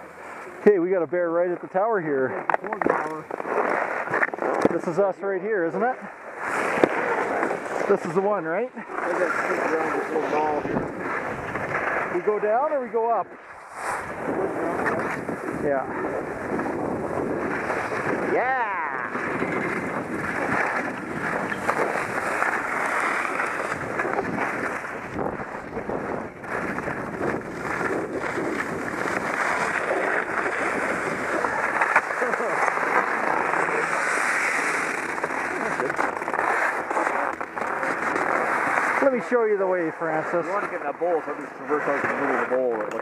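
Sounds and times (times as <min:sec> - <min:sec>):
skis scraping over snow: 0:00.0 - 0:42.9
wind on microphone: 0:09.2 - 0:12.1, 0:13.6 - 0:39.0.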